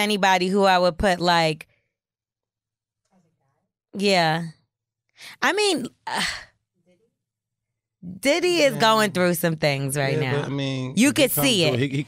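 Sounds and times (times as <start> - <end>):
person saying uh: 10.1 - 12.0.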